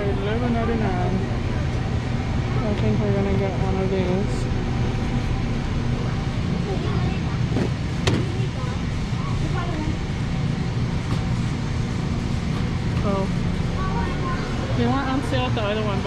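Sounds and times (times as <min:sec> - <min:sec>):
distant voices: 0:00.0 - 0:16.0
store hum: 0:00.0 - 0:16.0.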